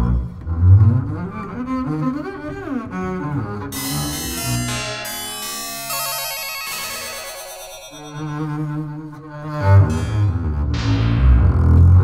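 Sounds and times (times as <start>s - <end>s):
electronic music with sustained tones: 3.7s - 9.1s, 9.9s - 11.5s
fast warbling trill: 3.8s - 8.7s.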